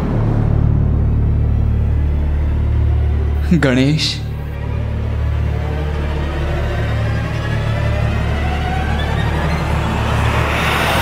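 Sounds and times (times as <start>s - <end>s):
low rumbling drone score: 0.0s - 11.0s.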